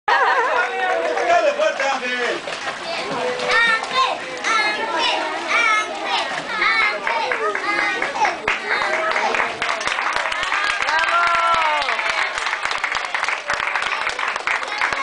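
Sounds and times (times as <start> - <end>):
children shouting: 2.9 - 9.7.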